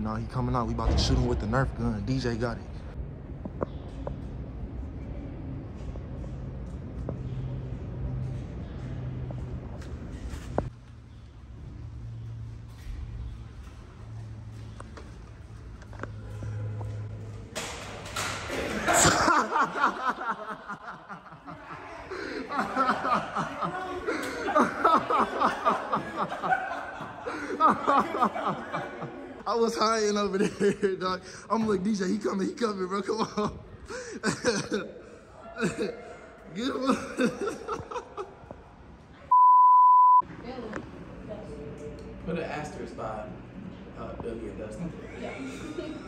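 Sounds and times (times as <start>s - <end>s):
men laughing hard: 18.5s - 29.5s, 30.1s - 31.4s, 33.0s - 38.6s, 45.0s - 46.0s
high-pitched censor bleep: 39.3s - 40.2s.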